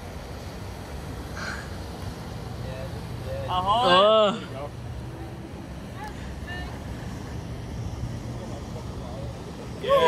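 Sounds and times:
boat engine rumbling: 0.0s - 10.0s.

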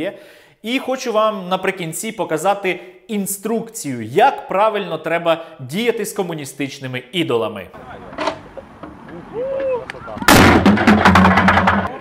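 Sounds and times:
bust crashing onto paving stones: 10.2s - 12.0s
sharp cracks and clatter: 10.3s - 11.9s.

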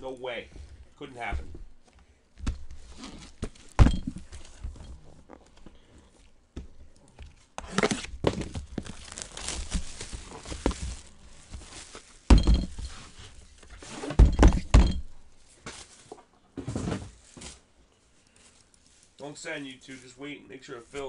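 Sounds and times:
rustling: 0.0s - 21.0s
thuds and knocks on tabletop: 3.4s - 4.8s, 12.3s - 12.9s, 14.1s - 15.0s.

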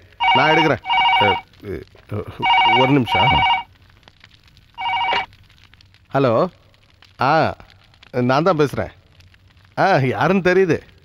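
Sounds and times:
telephone ringing electronic warble: 0.2s - 1.4s, 2.4s - 3.7s, 4.8s - 5.3s
man talking: 0.2s - 3.6s.

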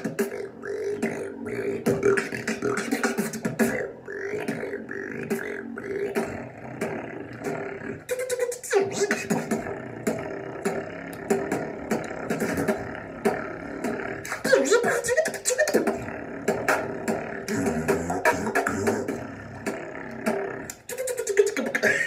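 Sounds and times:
person beatboxing: 0.0s - 22.0s.

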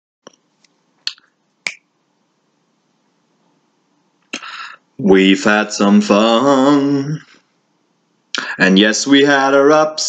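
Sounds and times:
finger snaps: 0.3s - 1.9s.

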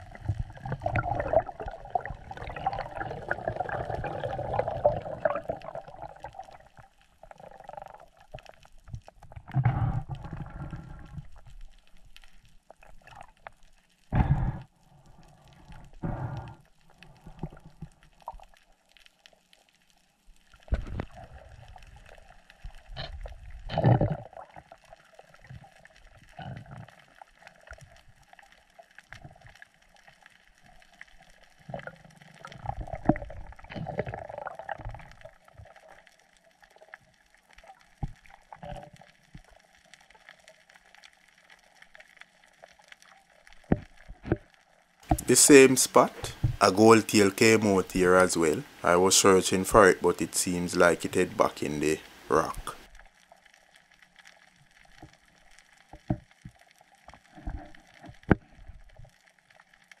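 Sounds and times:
water rushing past underwater: 0.0s - 8.5s, 45.0s - 52.9s
faint steady hum: 45.1s - 55.4s.

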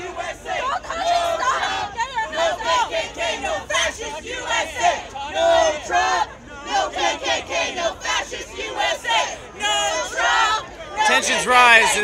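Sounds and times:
crowd: 0.0s - 12.0s
people shouting: 8.8s - 12.0s.

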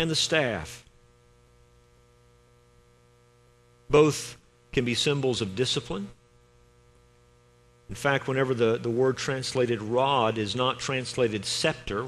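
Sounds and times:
man speaking: 0.0s - 0.9s, 3.9s - 6.2s, 7.9s - 12.0s
faint mains hum: 0.0s - 12.0s.

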